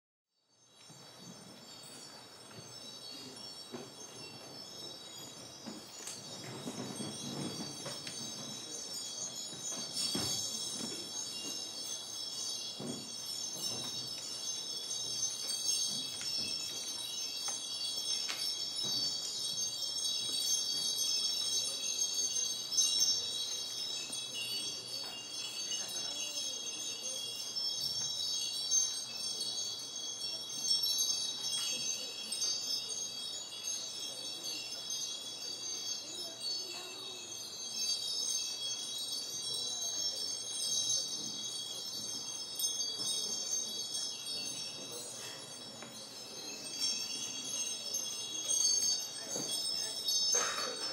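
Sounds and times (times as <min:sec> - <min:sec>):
wind chimes ringing: 0:00.4 - 0:50.9.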